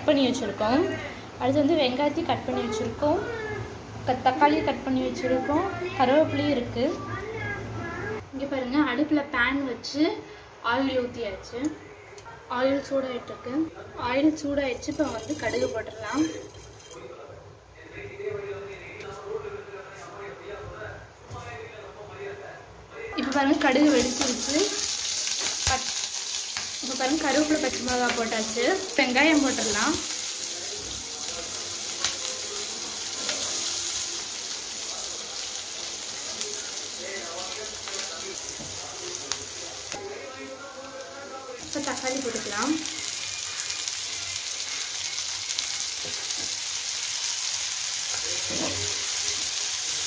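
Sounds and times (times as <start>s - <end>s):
seeds sizzling in oil: 23.7s - 50.0s.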